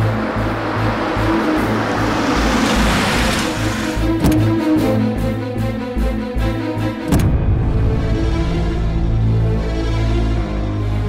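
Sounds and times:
rushing noise swell: 0.0 - 4.2
dramatic score with pulsing beat: 0.0 - 11.0.

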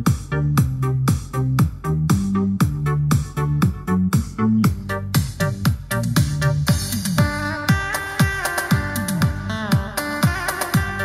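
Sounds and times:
electronic dance music on speaker: 0.0 - 11.0.

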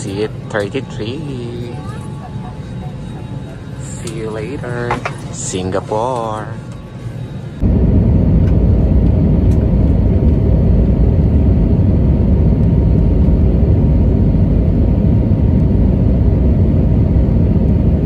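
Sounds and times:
jet cabin engine rumble: 0.0 - 18.0.

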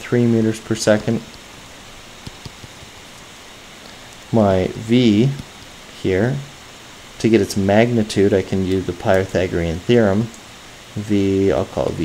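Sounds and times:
steady hiss: 0.0 - 12.0
stylus tapping on tablet screen: 2.2 - 3.0.

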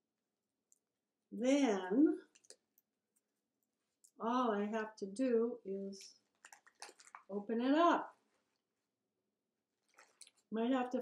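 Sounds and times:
faint clicks of paper twisting: 2.2 - 4.2, 6.0 - 7.3, 9.8 - 10.5.

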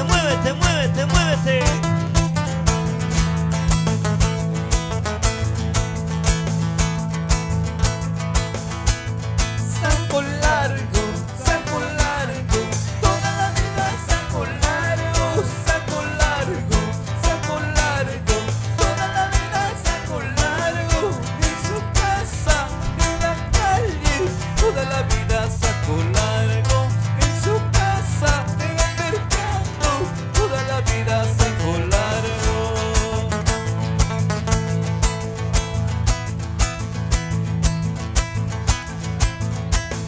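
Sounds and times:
live band playing: 0.0 - 40.0.

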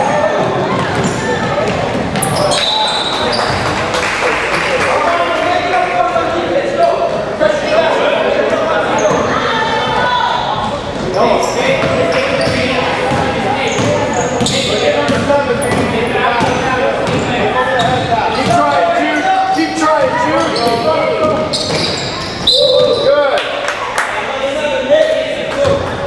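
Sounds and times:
voices echoing in gym: 0.0 - 26.0.

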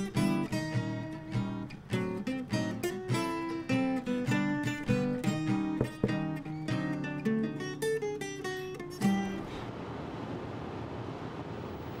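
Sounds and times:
car road and engine rumble: 9.4 - 12.0.

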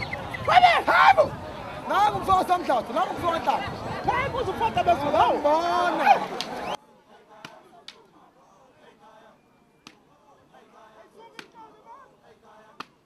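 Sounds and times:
faint crowd voices: 0.0 - 13.0.

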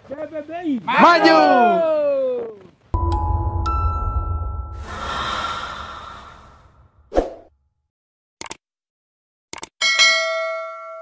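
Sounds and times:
notification bell ding: 3.0 - 4.8.

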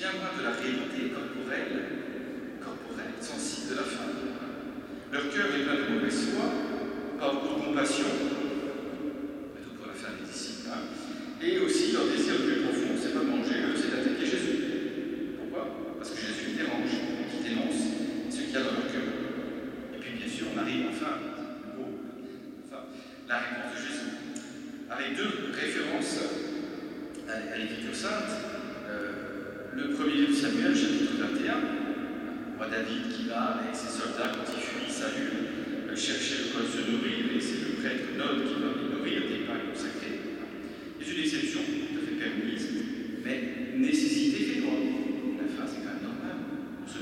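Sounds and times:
man speaking into a microphone: 0.0 - 47.0.

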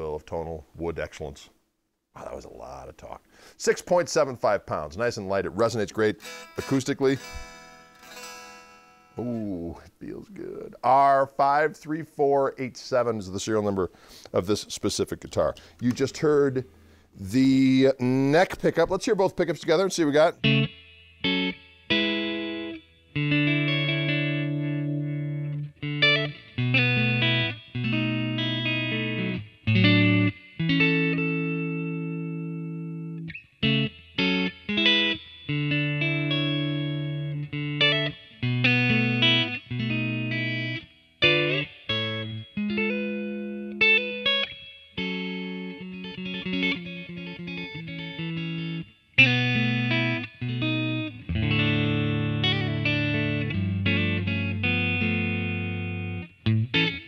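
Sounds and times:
electric guitar through amp: 5.9 - 10.7, 20.0 - 57.0.

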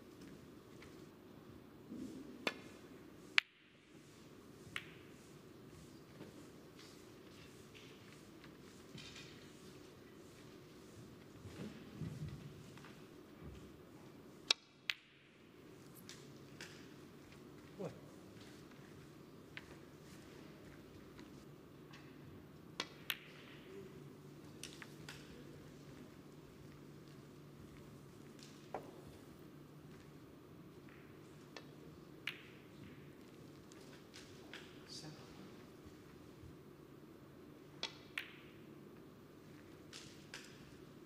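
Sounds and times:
snooker ball clicks: 22.7 - 23.7, 30.8 - 33.1, 37.8 - 38.6.

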